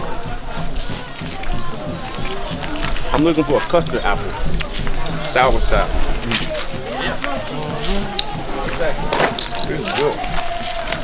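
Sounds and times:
background music: 0:00.0 - 0:11.0
indistinct voices: 0:00.0 - 0:11.0.

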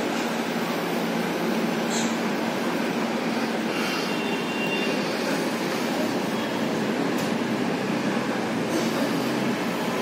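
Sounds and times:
ceiling fans rushing: 0:00.0 - 0:10.0.

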